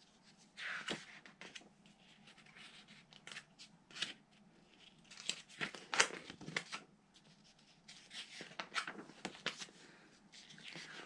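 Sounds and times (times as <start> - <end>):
book pages turning: 0.6 - 9.7, 10.3 - 11.0.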